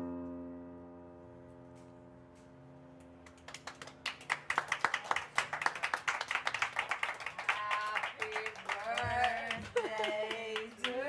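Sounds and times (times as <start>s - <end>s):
electric piano chord: 0.0s - 3.2s
audience applause: 3.3s - 11.0s.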